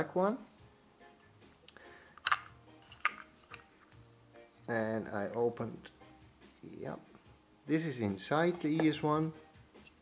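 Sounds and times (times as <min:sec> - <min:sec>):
faint background music: 0:00.0 - 0:10.0
plastic clicks from handling: 0:02.2 - 0:03.7.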